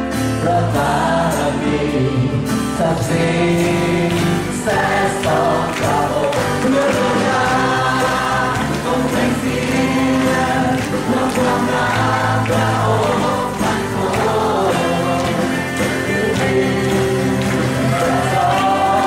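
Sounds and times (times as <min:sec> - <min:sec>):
acoustic guitar: 0:00.0 - 0:19.0
man singing lead: 0:00.0 - 0:19.0
voices singing along: 0:00.2 - 0:19.0.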